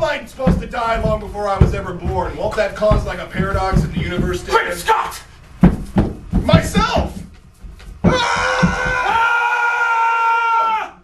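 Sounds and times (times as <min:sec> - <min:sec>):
men screaming: 0:08.0 - 0:11.0.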